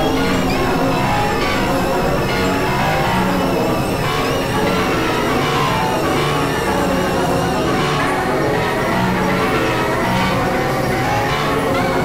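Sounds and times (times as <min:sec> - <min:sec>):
synthesizer drones: 0:00.0 - 0:12.0.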